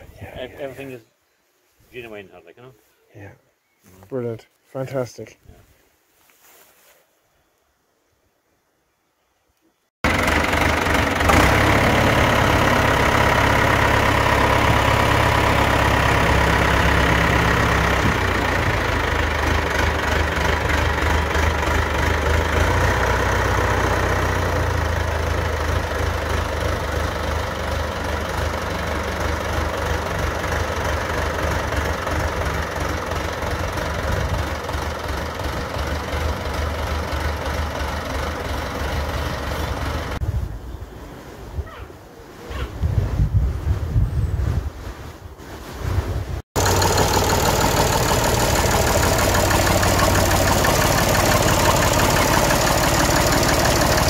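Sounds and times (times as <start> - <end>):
tractor diesel engine: 10.0 - 40.2, 46.6 - 54.0.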